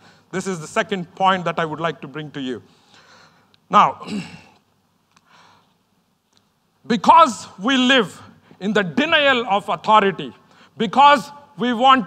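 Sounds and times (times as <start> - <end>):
faint breath: 2.7 - 3.5, 5.2 - 5.8.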